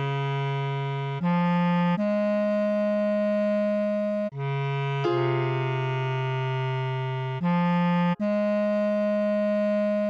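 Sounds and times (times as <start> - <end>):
bass clarinet long note: 0.0 - 10.0.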